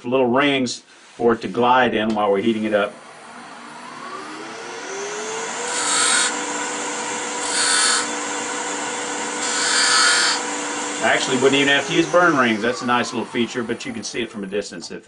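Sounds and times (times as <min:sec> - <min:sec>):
wood lathe motor whine: 0:02.6 - 0:14.6
chisel hissing cuts: 0:05.5 - 0:14.4.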